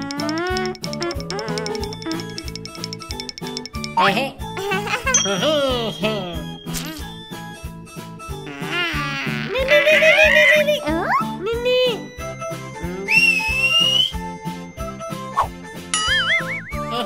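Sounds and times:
bouncy children's music: 0.0s - 17.0s
sliding whistle-like cartoon effects: 13.1s - 14.2s.

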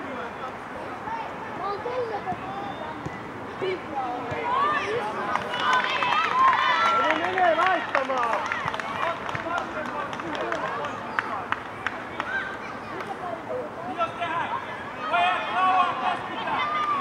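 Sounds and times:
young players shouting: 3.6s - 9.2s, 13.8s - 17.0s.

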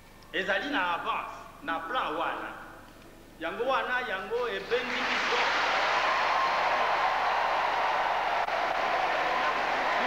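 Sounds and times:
audience applauding: 4.6s - 10.0s.

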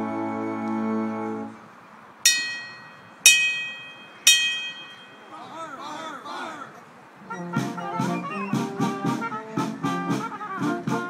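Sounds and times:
bell struck: 2.3s - 5.3s
brass band chord: 7.3s - 11.0s.

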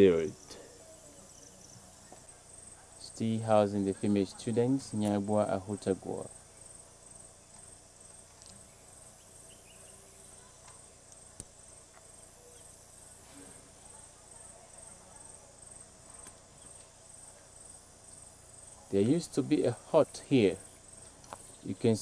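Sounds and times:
insects chirping: 0.0s - 22.0s.

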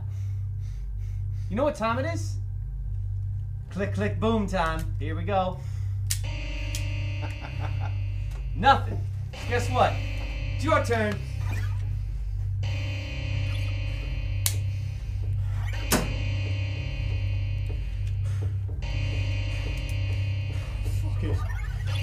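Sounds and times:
horror film score drone: 0.0s - 22.0s.

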